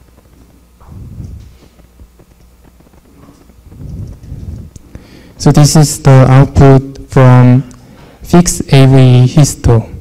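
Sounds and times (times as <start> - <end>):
microphone handling noise: 0.0 - 5.4.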